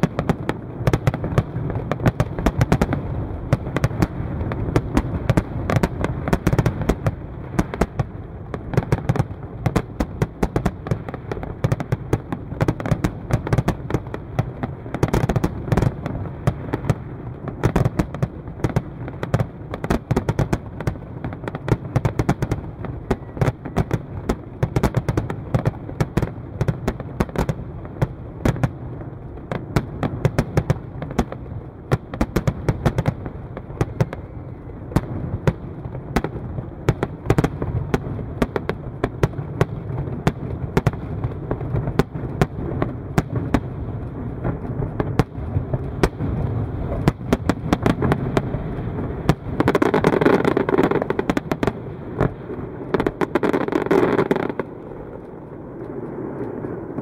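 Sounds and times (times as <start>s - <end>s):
continuous low rumble: 0.0s - 57.0s
fireworks bangs and pops: 0.0s - 57.0s.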